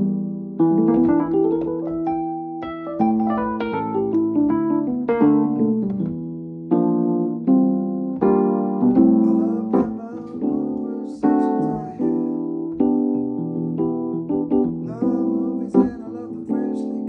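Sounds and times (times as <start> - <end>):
digital piano chords: 0.0 - 17.0.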